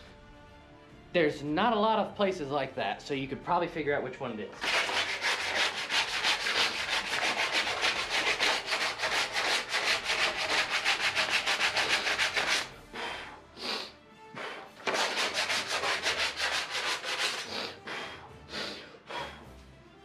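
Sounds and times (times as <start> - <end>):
hand sanding sheet metal: 4.6 - 12.8, 14.8 - 17.7.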